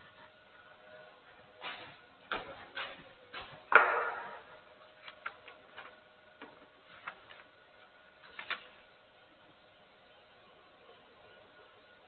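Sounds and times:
faint steady hum: 0:00.0 - 0:12.0
paper and book handling clicks: 0:05.0 - 0:07.6, 0:08.2 - 0:08.8.

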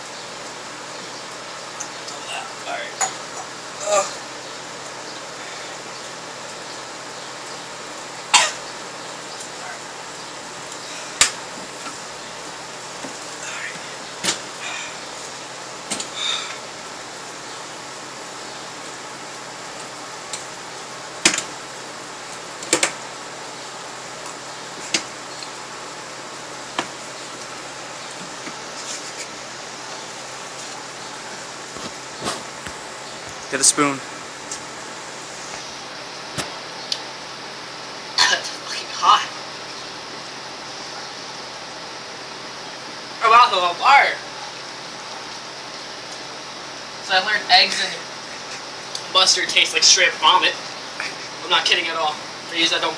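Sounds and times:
steady hiss: 0:00.0 - 0:52.9.

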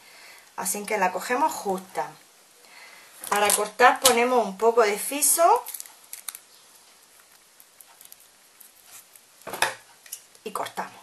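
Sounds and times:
adhesive tape rustling: 0:05.5 - 0:10.4.

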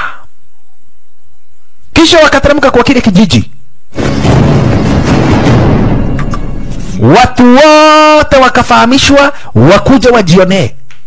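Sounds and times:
man speaking: 0:07.0 - 0:10.8.

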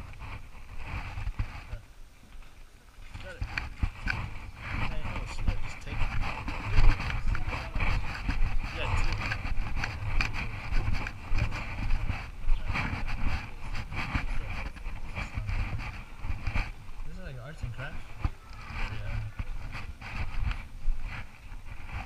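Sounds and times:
low uneven rumble: 0:00.0 - 0:22.0.

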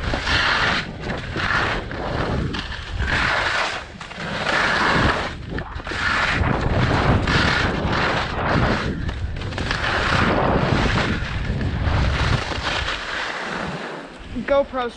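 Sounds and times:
wind buffeting microphone: 0:00.0 - 0:13.0
skis scraping over snow: 0:00.0 - 0:14.9.

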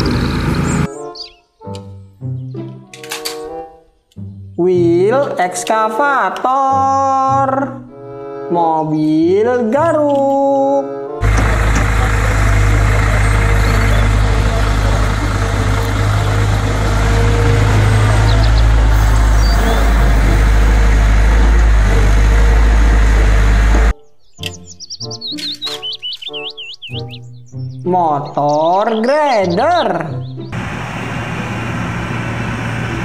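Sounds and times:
excavator diesel engine rumble: 0:00.0 - 0:00.9, 0:11.2 - 0:23.9, 0:30.5 - 0:33.0
bird chirping: 0:00.0 - 0:02.8, 0:12.3 - 0:20.1, 0:23.9 - 0:30.6
light music: 0:00.6 - 0:30.6.

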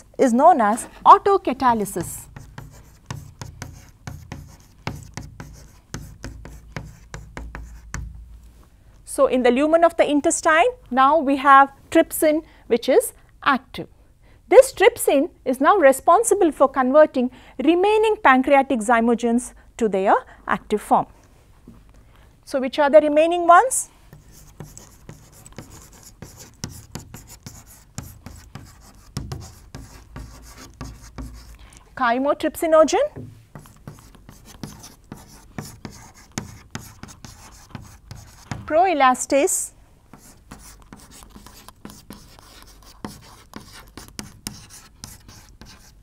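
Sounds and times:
chalk tapping and scratching: 0:00.7 - 0:08.2, 0:24.1 - 0:31.6, 0:33.1 - 0:38.8, 0:40.1 - 0:46.0.

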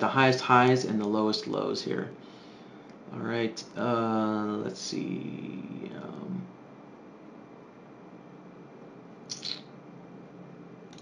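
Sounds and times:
soft high hiss: 0:00.0 - 0:11.0.

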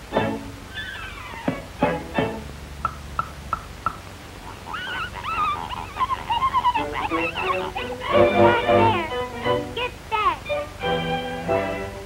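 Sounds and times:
animal-like cries sliding in pitch: 0:00.7 - 0:01.6, 0:04.5 - 0:09.2.

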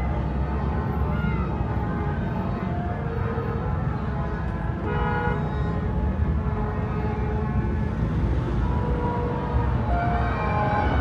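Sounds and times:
engines rumbling: 0:00.0 - 0:11.0
vehicle horns honking: 0:04.8 - 0:05.4.

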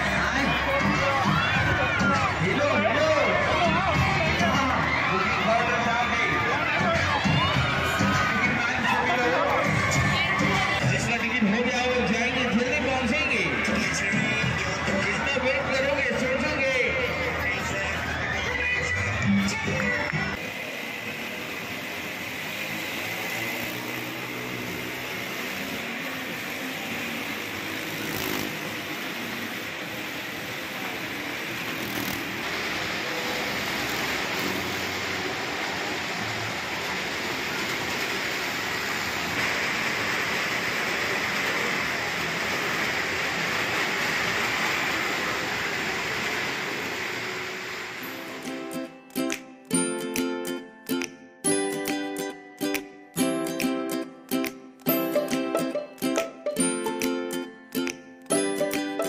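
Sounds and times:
motorcycle engine running: 0:20.4 - 0:48.2.

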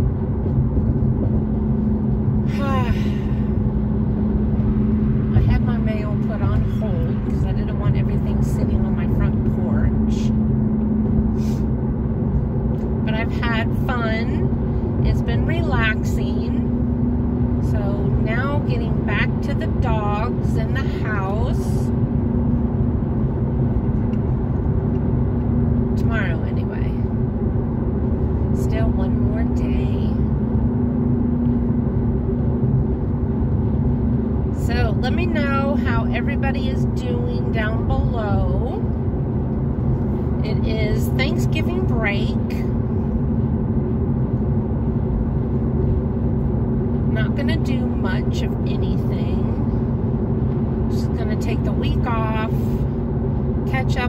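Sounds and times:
car road and engine drone: 0:00.0 - 0:54.0
low steady hum: 0:00.0 - 0:54.0
person's voice: 0:02.5 - 0:03.2, 0:05.4 - 0:10.3, 0:40.4 - 0:42.6, 0:51.0 - 0:52.7.

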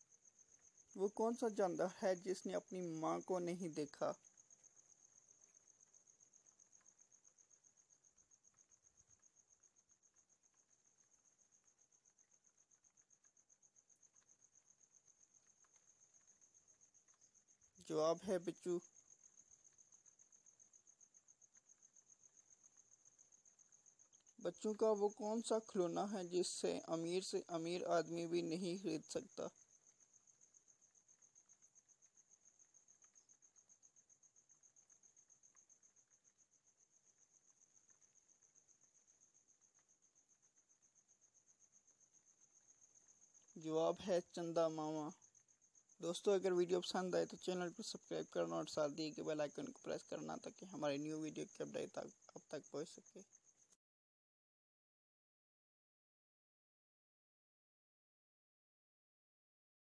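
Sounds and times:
cricket chirping: 0:00.0 - 0:53.8.

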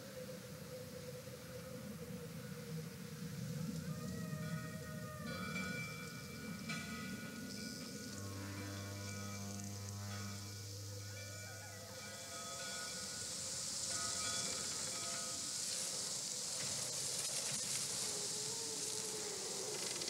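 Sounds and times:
thin wavering tone: 0:00.0 - 0:16.7
eerie night ambience hiss: 0:00.0 - 0:20.0.

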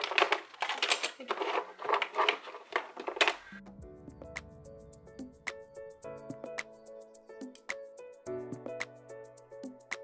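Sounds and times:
background music: 0:03.5 - 0:10.0.

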